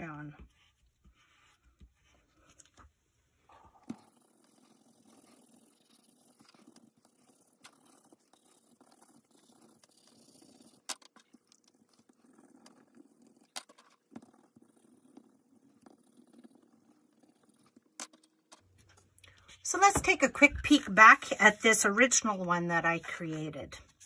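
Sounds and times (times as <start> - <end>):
pencil crayon scratching on paper: 3.8 - 17.8, 19.5 - 24.0.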